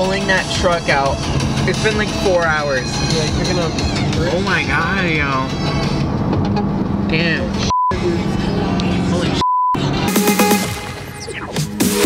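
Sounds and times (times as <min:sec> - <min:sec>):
music: 0:00.0 - 0:06.2, 0:09.8 - 0:12.0
censor beep: 0:07.7 - 0:08.0, 0:09.4 - 0:09.8.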